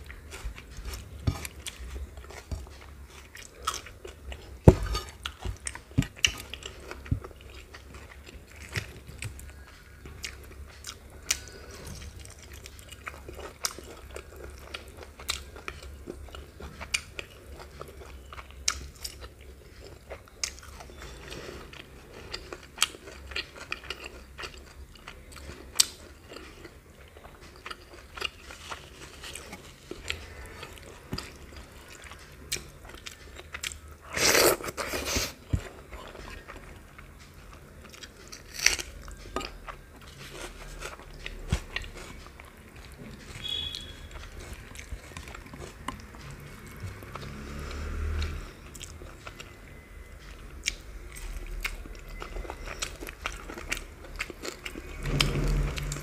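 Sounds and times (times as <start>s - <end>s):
chewing and wet mouth sounds: 0.0s - 56.0s.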